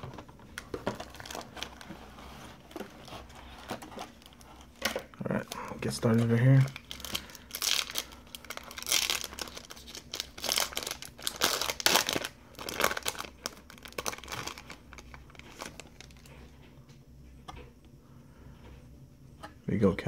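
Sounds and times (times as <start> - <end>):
foil wrapper tearing and crinkling: 0.0 - 2.0, 6.1 - 16.3.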